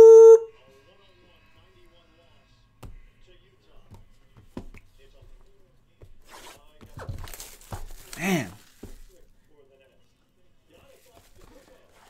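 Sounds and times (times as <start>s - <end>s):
plastic film ripping: 7.2s - 9.1s
plastic shrink wrap crinkling: 7.2s - 9.2s.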